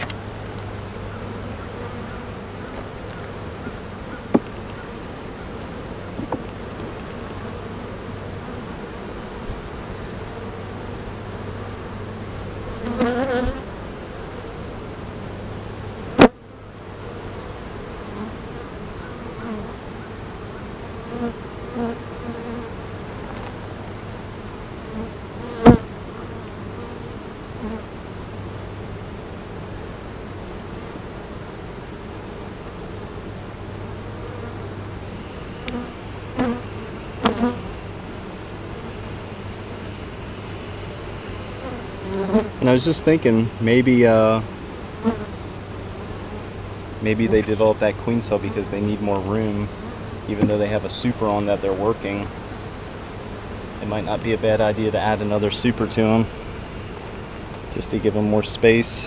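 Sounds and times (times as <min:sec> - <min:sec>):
honeybees buzzing: 0:00.0 - 0:59.0.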